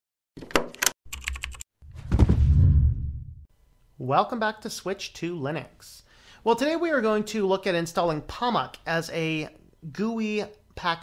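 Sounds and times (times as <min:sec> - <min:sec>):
computer keyboard typing: 0:00.8 - 0:01.6
deep thump with low rumble: 0:02.0 - 0:03.4.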